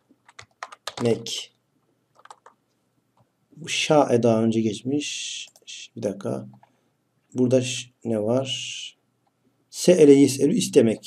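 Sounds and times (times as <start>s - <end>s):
computer keyboard typing: 0.0s - 1.4s, 2.1s - 2.6s.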